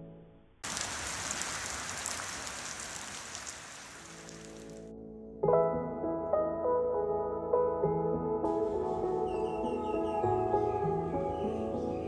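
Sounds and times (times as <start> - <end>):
rain on water and stone: 0.6 - 4.9
soft music: 4.2 - 12.0.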